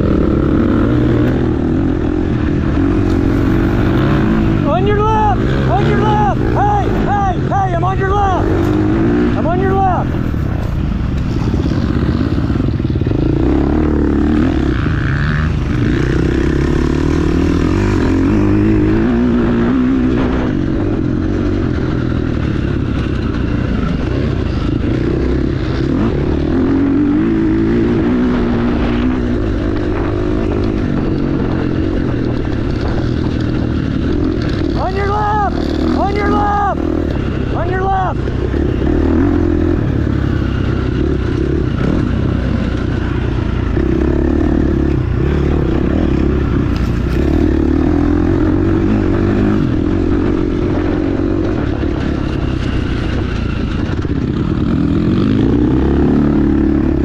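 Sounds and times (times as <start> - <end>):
dirt bike engine revving: 0.0 - 57.0
wind rumble on microphone: 17.2 - 36.2, 39.1 - 57.0.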